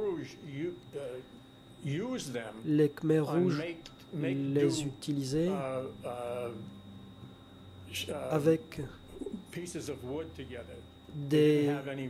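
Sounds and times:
man talking: 0.0s - 6.7s, 7.9s - 12.0s.

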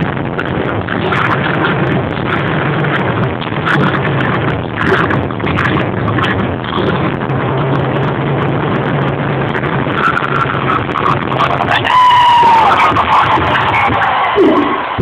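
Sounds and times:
crowd noise: 0.0s - 15.0s
live concert music over speakers: 0.0s - 15.0s.

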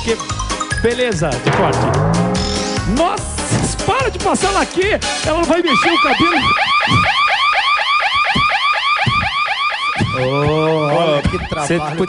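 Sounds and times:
warbling electronic alarm: 5.5s - 12.0s.

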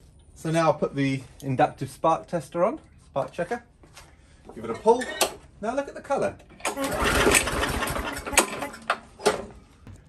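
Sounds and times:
lawn mower engine cranking: 6.4s - 9.5s.

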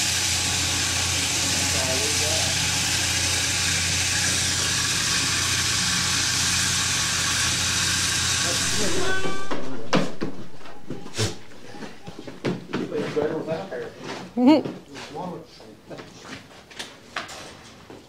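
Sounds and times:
electric shearing machine running: 0.0s - 12.7s
faint voices: 8.5s - 13.6s.

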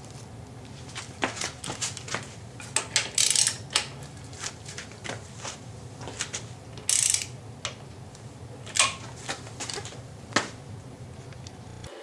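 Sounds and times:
socket ratchet wrench clicking: 2.8s - 3.9s, 6.8s - 7.4s.

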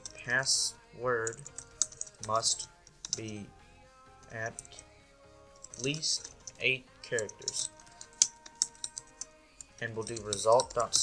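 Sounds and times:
typing on a keyboard: 1.2s - 2.3s.

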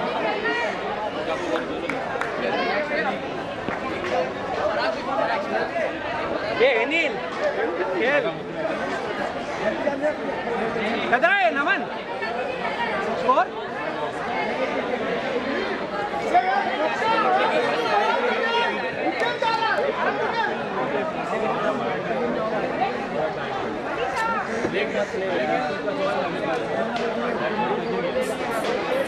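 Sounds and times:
people chattering: 0.0s - 29.0s.

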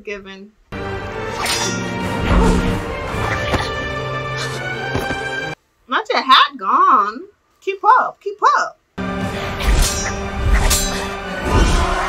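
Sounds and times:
dramatic music score: 0.8s - 5.6s, 9.0s - 12.0s
whooshing swings: 1.2s - 4.7s, 9.3s - 12.0s
heavy hits: 1.2s - 5.3s, 9.0s - 12.0s.

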